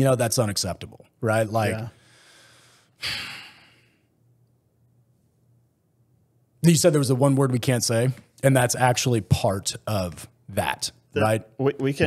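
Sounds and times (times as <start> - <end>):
man breathing in: 2.0 - 4.1
sigh-like breath out: 2.0 - 4.1.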